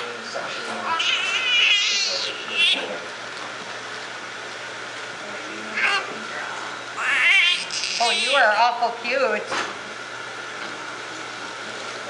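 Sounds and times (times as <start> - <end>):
newborn baby crying: 0.8 - 2.5, 7.0 - 8.4.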